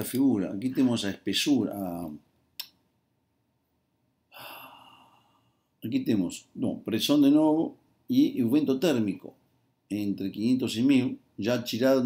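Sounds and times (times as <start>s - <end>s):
person speaking: 0.0s - 2.2s, 5.8s - 12.0s
breath close to microphone: 4.3s - 5.7s.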